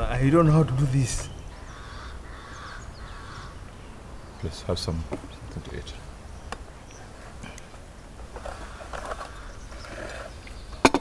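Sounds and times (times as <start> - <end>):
bird calling: 0.0 - 11.0
low wind rumble: 0.0 - 11.0
small birds chirping: 0.0 - 11.0.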